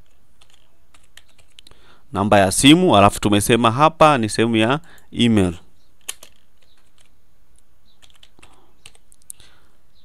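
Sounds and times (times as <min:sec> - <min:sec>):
computer keyboard typing: 0:00.4 - 0:01.7, 0:06.0 - 0:07.2, 0:08.0 - 0:09.3.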